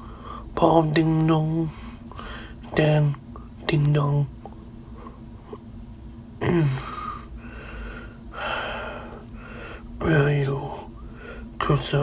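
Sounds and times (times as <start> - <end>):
man breathing heavily: 0.0 - 0.6, 1.7 - 2.6, 6.7 - 10.0, 10.9 - 11.6.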